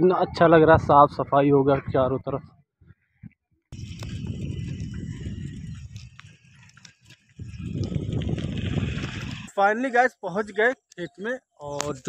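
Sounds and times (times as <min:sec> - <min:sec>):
wind buffeting microphone: 0:00.0 - 0:09.5.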